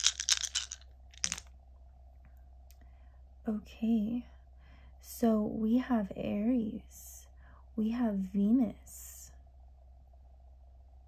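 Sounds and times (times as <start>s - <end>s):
plastic dice clattering: 0.0s - 1.5s
faint steady hum: 0.0s - 11.0s.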